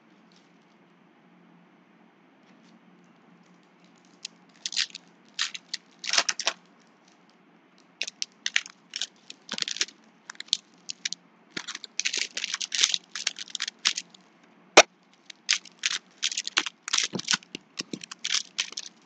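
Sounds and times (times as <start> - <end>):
foil wrappers crinkling: 4.0 - 6.6, 8.0 - 14.3, 15.2 - 19.0.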